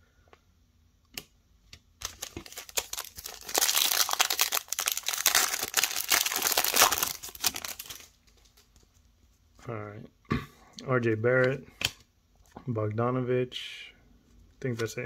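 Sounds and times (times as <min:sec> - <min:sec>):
foil wrapper tearing and crinkling: 0:02.0 - 0:08.8.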